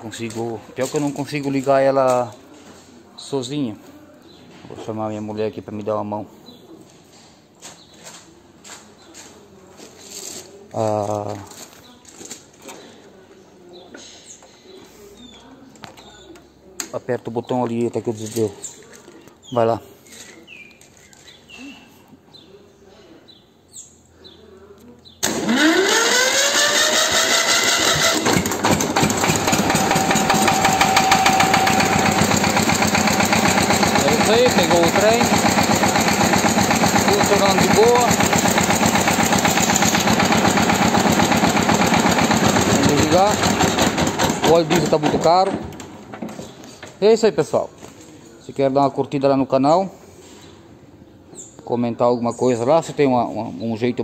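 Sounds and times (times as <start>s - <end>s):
diesel engine idling: 25.3s - 45.0s.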